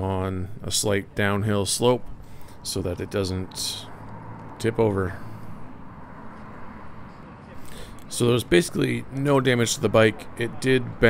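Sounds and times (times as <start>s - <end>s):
low road traffic rumble: 0.0s - 11.0s
car passing: 0.4s - 11.0s.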